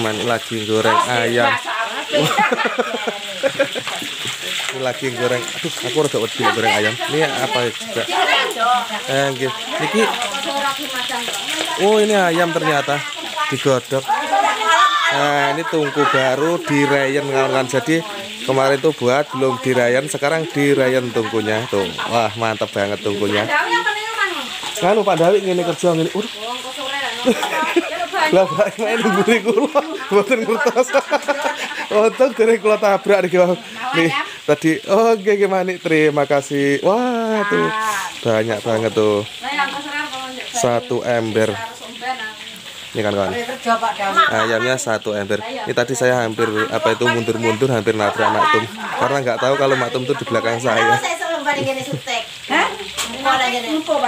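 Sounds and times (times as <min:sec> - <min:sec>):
background voices: 0:00.0 - 0:54.0
chicken sizzling in a pan: 0:00.0 - 0:54.0.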